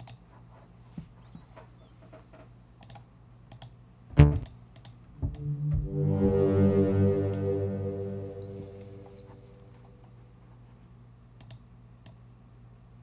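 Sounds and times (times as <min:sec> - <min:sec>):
loud synth note: 0:05.2 - 0:09.8
held synth chord: 0:05.2 - 0:09.9.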